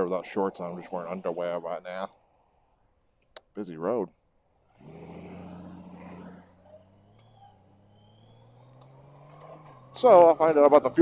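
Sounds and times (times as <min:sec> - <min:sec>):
motorcycle engine humming: 0:04.4 - 0:11.0.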